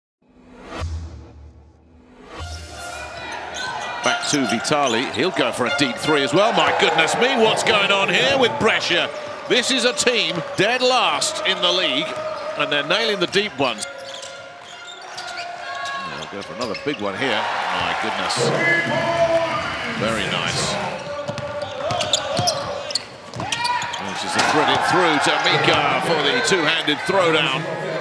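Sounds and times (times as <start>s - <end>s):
arena crowd sound: 2.7s - 28.0s.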